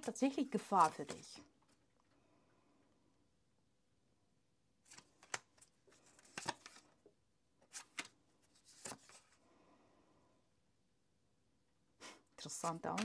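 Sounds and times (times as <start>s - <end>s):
cards shuffling and snapping: 0.6s - 1.3s, 4.8s - 7.0s, 7.6s - 9.3s, 12.5s - 13.0s.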